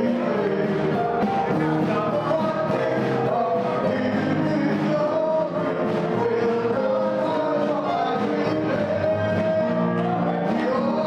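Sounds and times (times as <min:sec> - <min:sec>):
group of voices singing gospel: 0:00.0 - 0:11.0
instrumental backing: 0:00.0 - 0:11.0.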